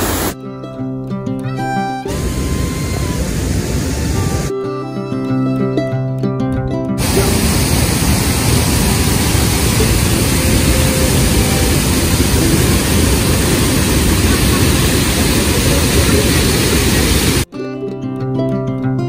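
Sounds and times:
waterfall pouring into pool: 7.0 - 17.5.

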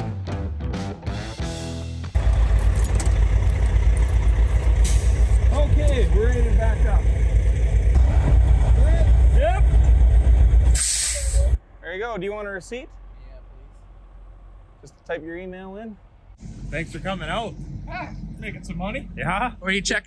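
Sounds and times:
diesel truck engine idling: 2.2 - 20.0.

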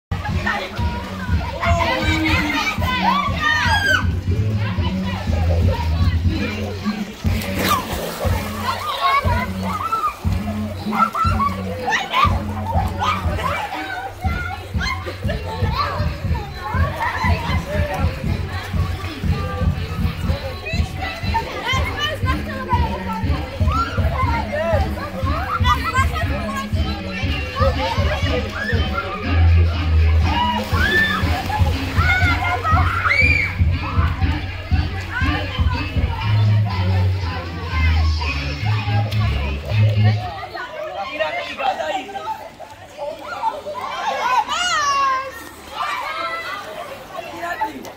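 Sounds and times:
music with steady beat: 0.1 - 40.3
people chattering and calling out: 0.1 - 47.9
young voices shouting: 0.1 - 47.9.

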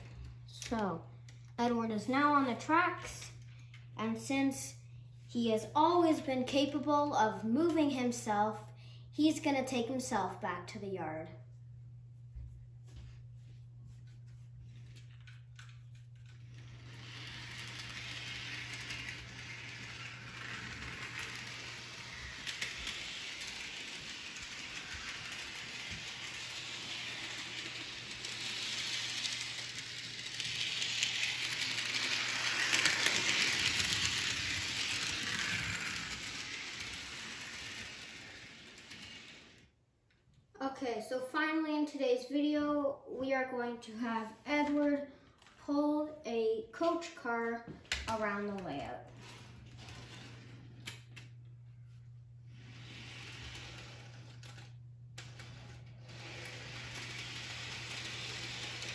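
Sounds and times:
low steady hum: 0.0 - 41.2
model train wheels and motor rattling: 14.7 - 39.8, 47.9 - 58.9.

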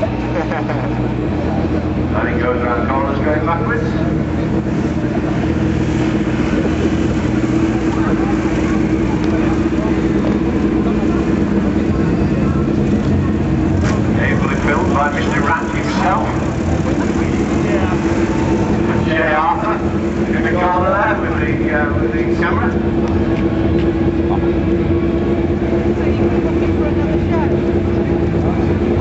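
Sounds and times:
motorcycle engine running: 0.0 - 29.0.

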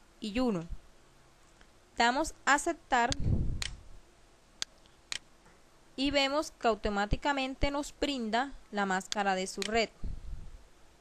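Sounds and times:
computer mouse clicks: 9.1 - 9.8.

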